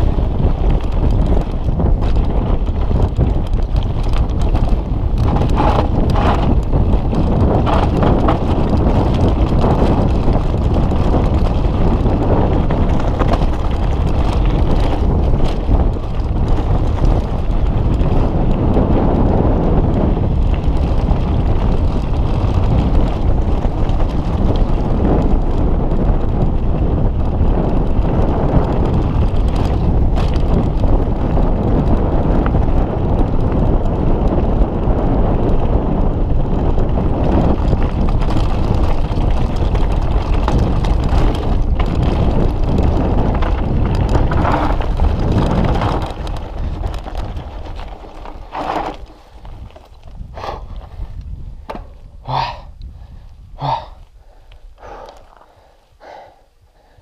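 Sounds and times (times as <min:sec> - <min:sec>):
bike tyres rolling over gravel: 0:00.0 - 0:57.0
wind buffeting microphone: 0:00.0 - 0:57.0
rider breathing: 0:44.0 - 0:57.0.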